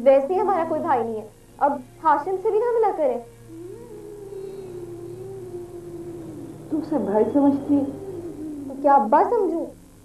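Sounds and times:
long held music note: 3.4s - 9.6s.

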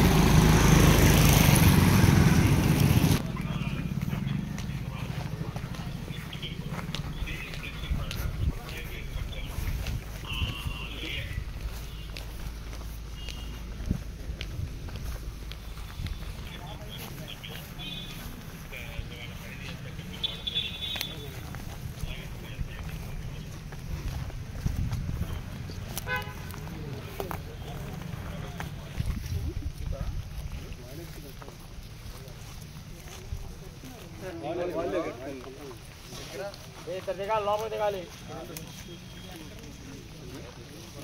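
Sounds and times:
footsteps on dirt and grass: 0.0s - 41.0s.

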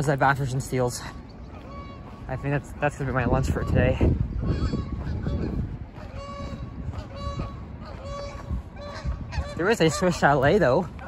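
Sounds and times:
geese honking: 0.0s - 11.0s.

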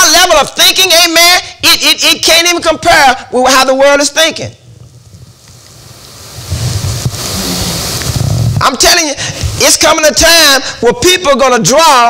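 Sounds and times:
clothing rubbing on lapel microphone: 4.6s - 8.7s.

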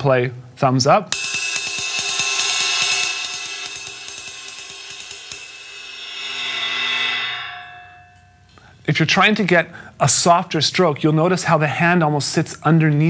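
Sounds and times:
drumstick tapping ride cymbal: 1.1s - 8.7s
cymbal ringing: 1.1s - 8.8s.

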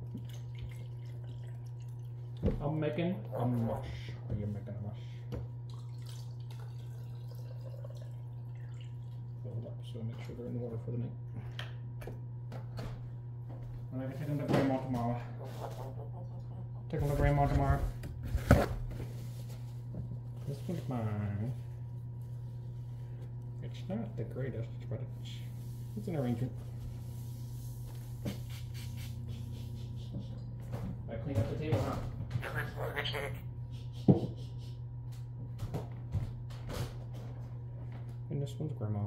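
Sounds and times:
steady low hum: 0.0s - 39.0s.

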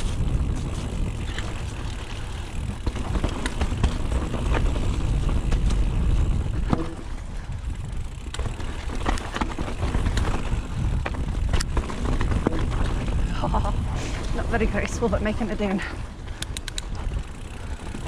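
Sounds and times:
bike clicks and rattles: 0.0s - 18.0s
wind rumble on microphone: 0.0s - 18.0s.

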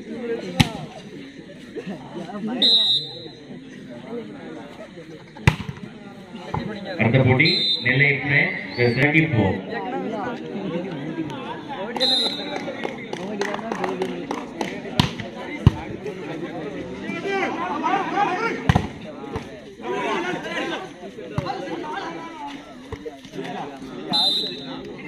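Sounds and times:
crowd voices and shouting: 0.0s - 25.0s
volleyball being hit: 5.5s - 5.8s.

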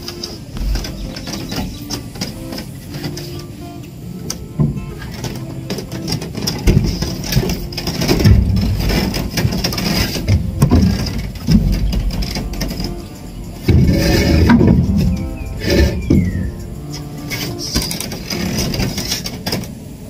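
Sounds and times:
wooden planks thudding and rattling: 0.0s - 3.3s, 4.6s - 19.8s.

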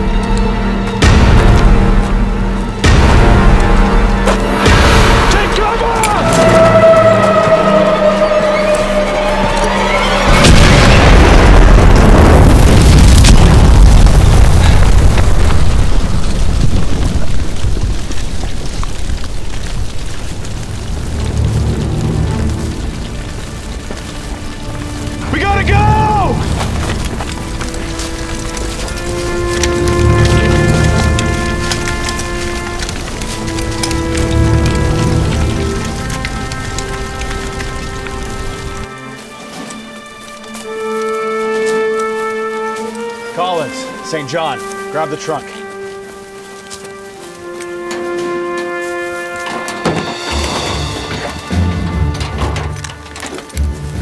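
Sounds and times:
dramatic film score: 0.0s - 54.0s
loud explosion with rumble: 10.3s - 18.4s.

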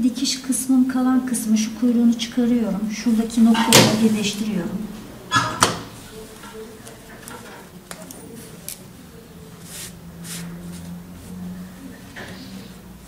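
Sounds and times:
satin fabric rustling: 9.5s - 11.6s.

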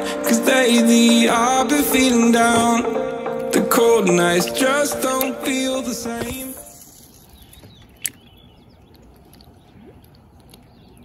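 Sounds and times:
distant bird chirps: 5.6s - 11.0s.

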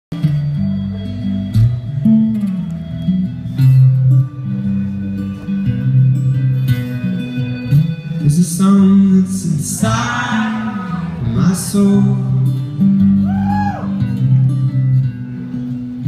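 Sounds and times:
amplified acoustic guitar chords: 0.1s - 16.0s.

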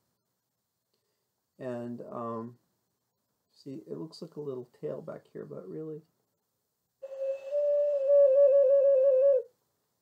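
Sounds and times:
flute-like whistle warbling: 7.0s - 9.5s.

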